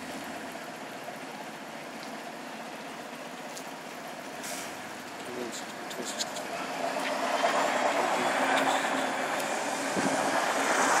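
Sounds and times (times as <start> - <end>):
bus engine accelerating: 0.0 - 11.0
road noise: 0.0 - 11.0.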